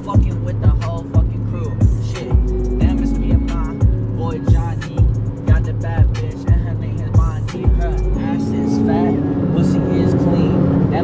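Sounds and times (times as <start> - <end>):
car road and engine rumble: 0.0 - 11.0
hip-hop beat with heavy bass: 0.0 - 11.0.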